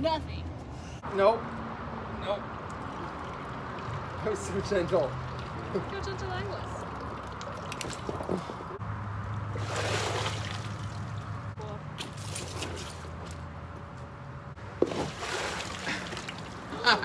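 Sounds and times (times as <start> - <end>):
water sloshing and trickling: 2.3 - 13.6, 14.6 - 17.0
bucket tipped splash: 9.6 - 11.2, 12.0 - 13.2, 14.8 - 16.7.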